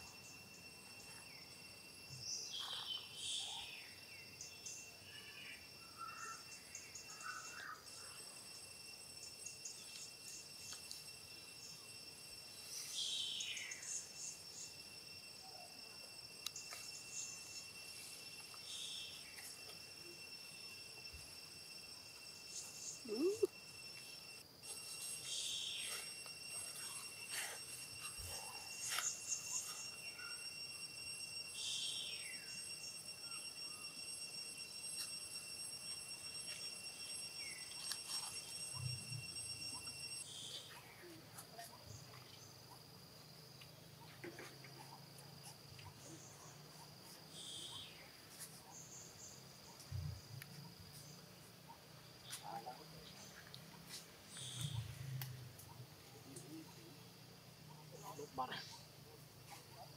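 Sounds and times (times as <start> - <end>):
insects shrilling: 0.0 - 42.5.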